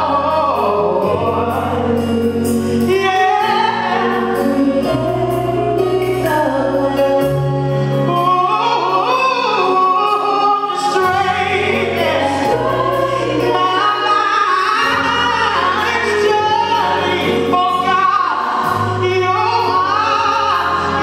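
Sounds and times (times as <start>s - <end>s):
instrumental accompaniment with bass: 0.0s - 21.0s
woman singing gospel solo: 0.0s - 21.0s.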